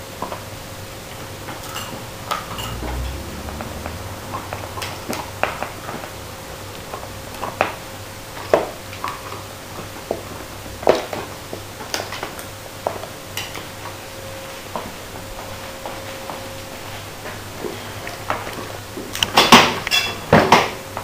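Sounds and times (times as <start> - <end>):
faint hum: 0.0 - 19.3
dogs gnawing bones: 1.1 - 14.0.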